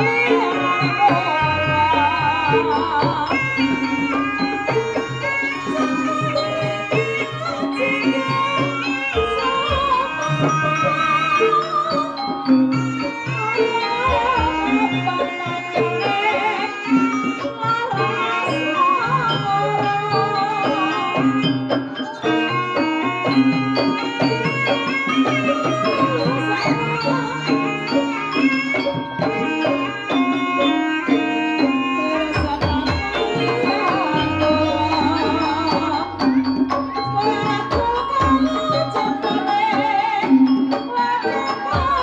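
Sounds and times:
gamelan metal keys ringing: 0.0s - 42.0s
hanging gongs: 0.0s - 42.0s
kendang drums: 0.0s - 42.0s
metallophones: 0.0s - 42.0s
person singing: 0.0s - 42.0s.

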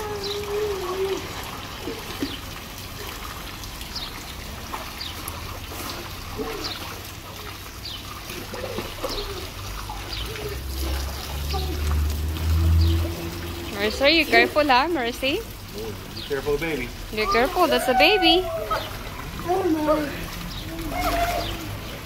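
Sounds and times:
water trickling and lapping: 0.0s - 22.0s.

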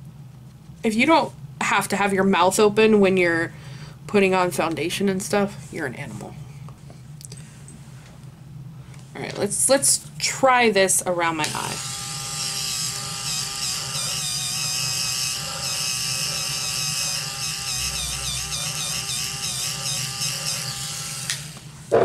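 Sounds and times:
small electric motor whining: 11.5s - 21.6s.

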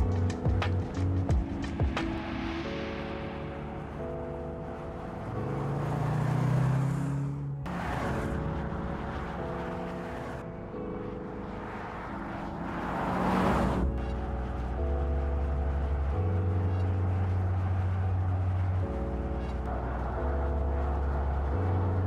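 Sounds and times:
background music with held chords: 0.0s - 22.0s
car driving by: 2.3s - 22.0s.

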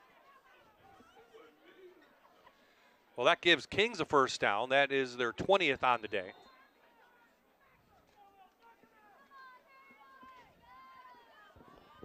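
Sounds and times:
distant crowd and players calling: 0.0s - 12.0s.

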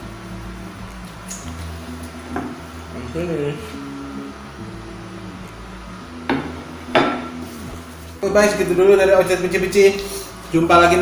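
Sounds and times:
plate knocking on table: 6.3s - 7.3s.

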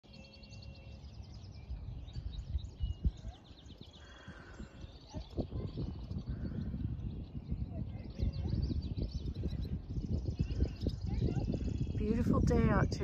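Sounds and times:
birds chirping and trilling: 0.0s - 13.0s
wind rumble on microphone: 0.2s - 13.0s.

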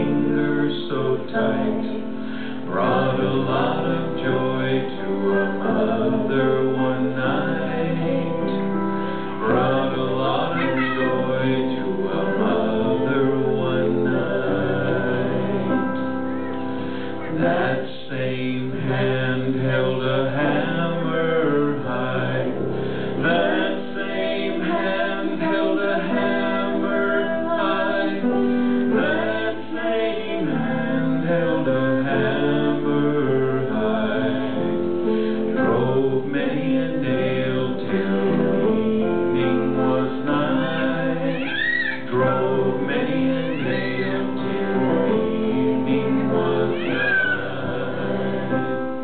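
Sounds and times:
man singing into microphone: 0.0s - 16.0s, 17.2s - 48.8s
grand piano: 0.0s - 49.0s.

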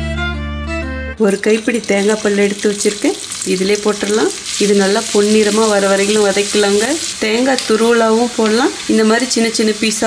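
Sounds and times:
coconut sizzling in hot fat: 1.4s - 10.0s.

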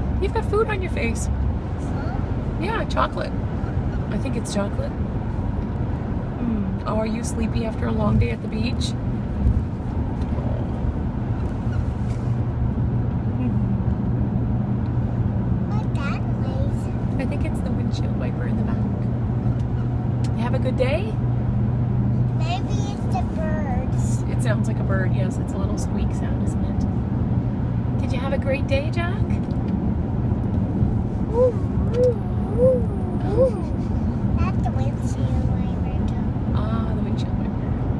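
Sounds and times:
car road and engine noise: 0.0s - 37.9s.

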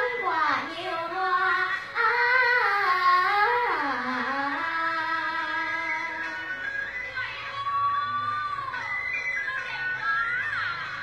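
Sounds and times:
girl singing in high voice: 0.0s - 11.0s.

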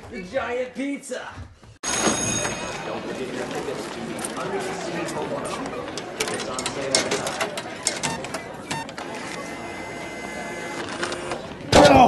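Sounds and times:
indistinct chatter: 2.1s - 12.0s.

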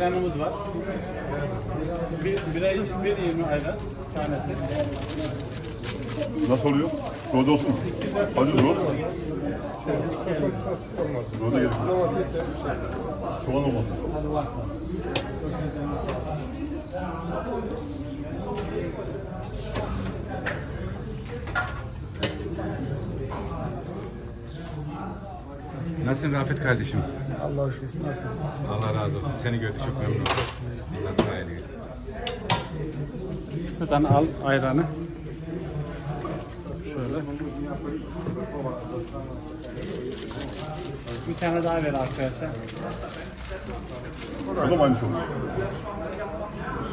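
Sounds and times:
chatter of people: 0.0s - 46.9s.

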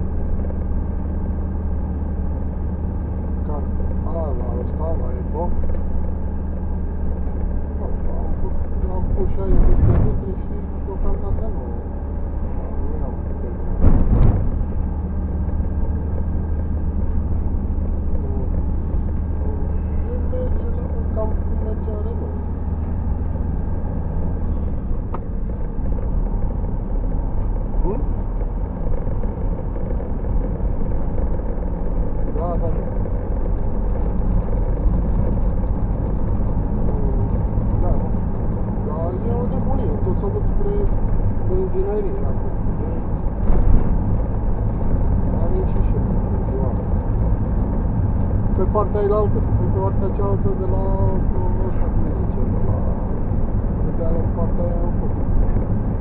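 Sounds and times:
car engine and road drone: 0.0s - 56.0s
sharp knock: 13.8s - 14.7s.

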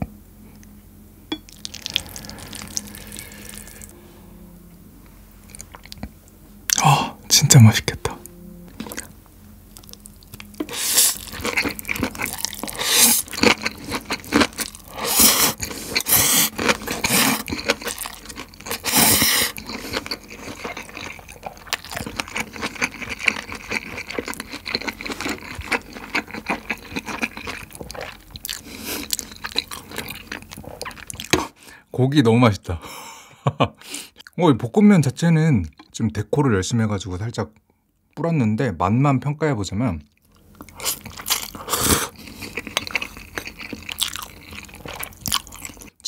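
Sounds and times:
close chewing of noodles: 1.5s - 4.0s, 9.7s - 31.6s, 40.2s - 46.0s.

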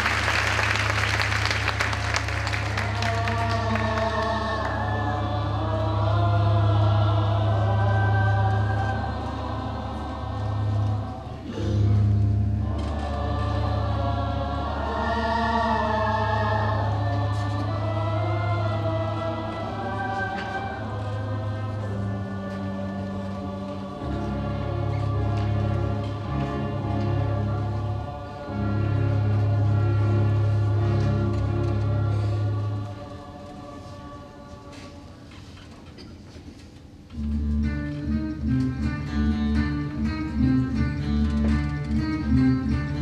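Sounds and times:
musical theatre score live: 0.0s - 43.0s
chorus singing a held chord: 2.4s - 35.4s.

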